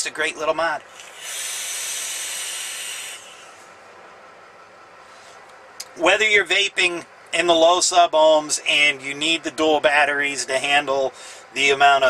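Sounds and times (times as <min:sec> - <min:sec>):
airy hiss of vape draw: 0:01.0 - 0:03.6
breathy exhale: 0:01.0 - 0:03.7, 0:11.2 - 0:11.5.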